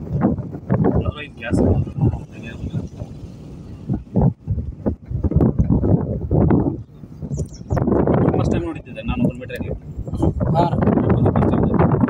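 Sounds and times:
low rumble: 0:00.0 - 0:12.0
wind buffeting microphone: 0:00.0 - 0:12.0
voices talking: 0:01.0 - 0:03.2, 0:07.3 - 0:11.9.

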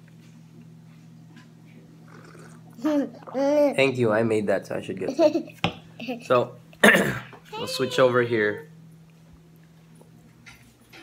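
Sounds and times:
person speaking loudly: 0:07.6 - 0:08.6.

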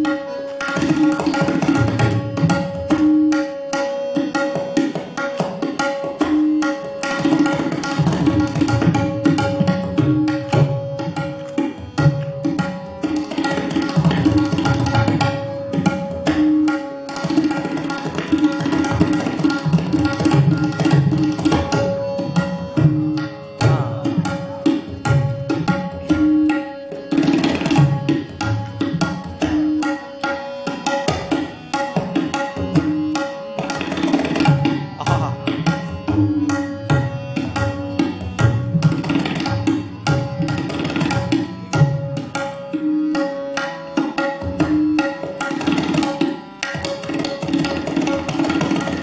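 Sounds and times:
harmonium note held: 0:00.0 - 0:47.4
tabla strokes: 0:00.0 - 0:49.0.

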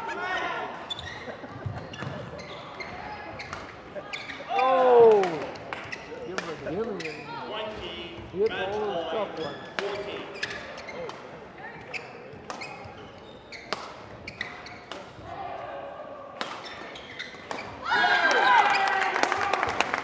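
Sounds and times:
shoes squeaking on court: 0:00.4 - 0:04.6, 0:05.8 - 0:08.5, 0:09.2 - 0:15.2, 0:16.6 - 0:17.8
rackets hitting shuttlecock: 0:03.4 - 0:03.8, 0:09.8 - 0:15.3, 0:16.4 - 0:17.8.

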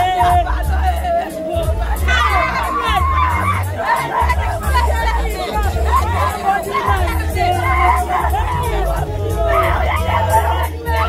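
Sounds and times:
low bass background music: 0:00.0 - 0:11.0
women wailing and crying: 0:00.0 - 0:11.0.

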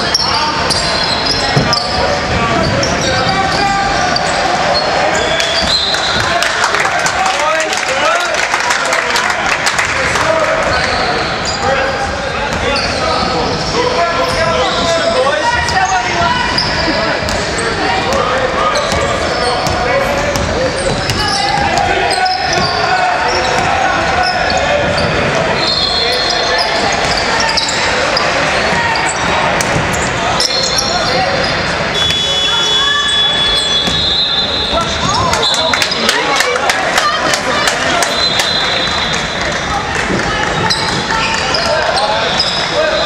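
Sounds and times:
indistinct shouts and chatter: 0:00.0 - 0:43.0.

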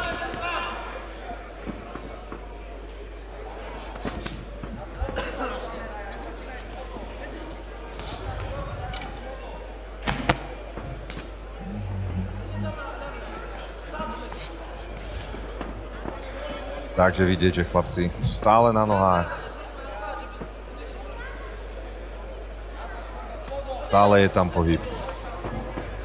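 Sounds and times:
crowd voices echoing: 0:00.0 - 0:26.0.

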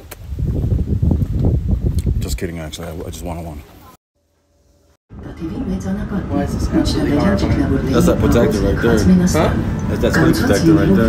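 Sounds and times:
wind buffeting microphone: 0:00.0 - 0:03.3.

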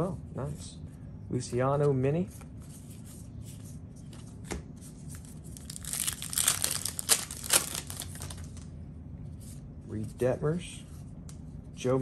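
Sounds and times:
wrapper crinkling: 0:05.5 - 0:08.7
wrapper ripping: 0:05.6 - 0:08.6.

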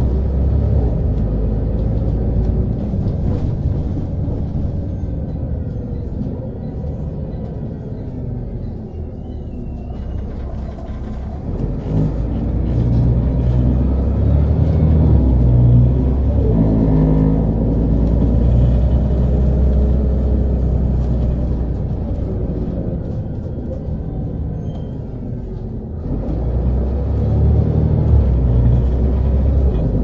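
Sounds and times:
bus diesel engine accelerating: 0:00.0 - 0:30.0.

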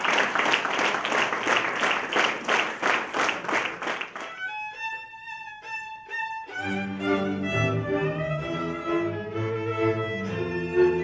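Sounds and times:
fiddle melody: 0:04.2 - 0:11.0
accompanying strings and double bass: 0:04.4 - 0:11.0.

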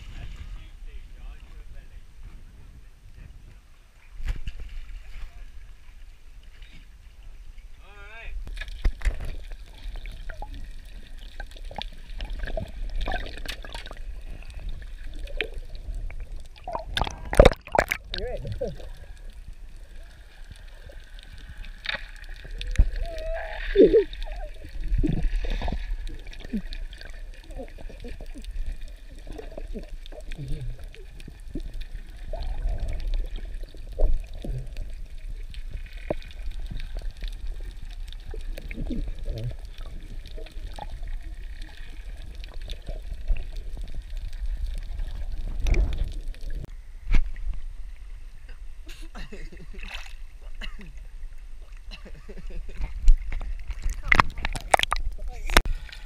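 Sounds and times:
underwater gurgling and sloshing: 0:00.0 - 0:56.0.

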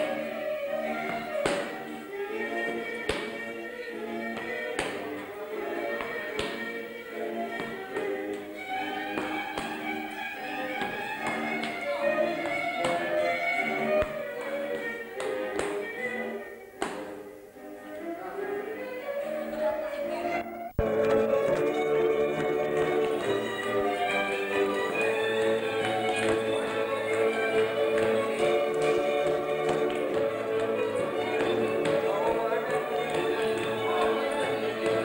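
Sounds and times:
fiddle folk dance music: 0:00.0 - 0:35.0
boot strikes slaps and stamps: 0:01.0 - 0:01.8, 0:03.1 - 0:03.3, 0:06.0 - 0:06.7.

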